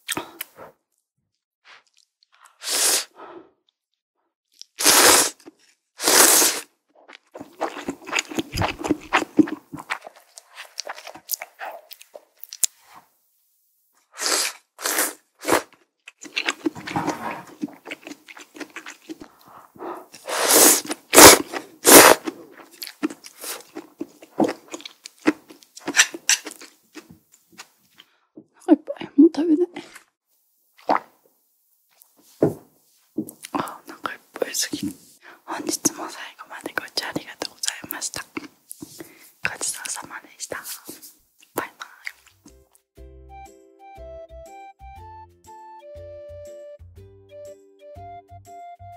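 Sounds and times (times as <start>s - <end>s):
noodles being slurped: 4.6s - 13.0s, 14.1s - 28.1s, 30.8s - 31.2s
woman whispering: 33.5s - 38.4s, 39.4s - 42.2s.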